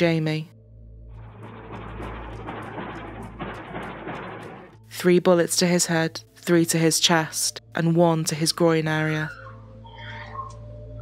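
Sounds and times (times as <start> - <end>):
low droning music: 0.0 - 11.0.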